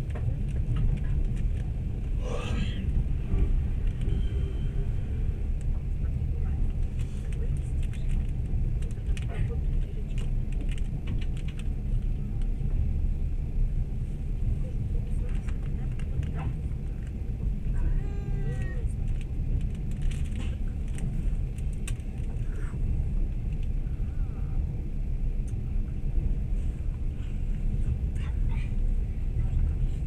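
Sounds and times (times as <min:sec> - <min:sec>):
light clicks of train wheels: 0:00.0 - 0:01.9, 0:03.3 - 0:04.2, 0:05.5 - 0:05.9, 0:06.5 - 0:12.9, 0:15.0 - 0:23.8, 0:25.4 - 0:30.0
train rumbling on rails: 0:00.0 - 0:30.0.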